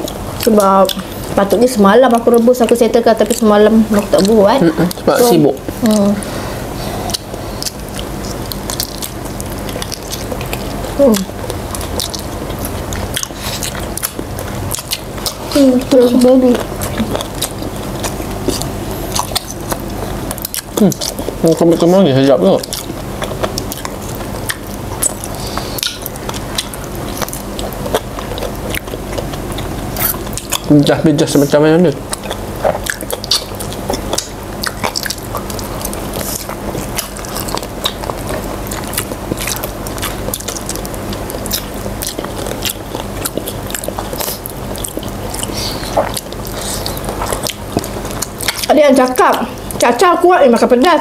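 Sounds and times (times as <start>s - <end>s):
biting and chewing: 0.0s - 50.8s
teeth clicks: 7.1s - 15.4s, 16.2s - 31.0s, 32.1s - 49.8s.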